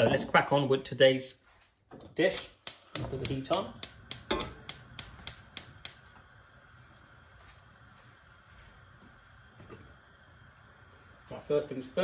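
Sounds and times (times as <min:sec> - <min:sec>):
gas hob igniter clicking: 0:02.1 - 0:11.3.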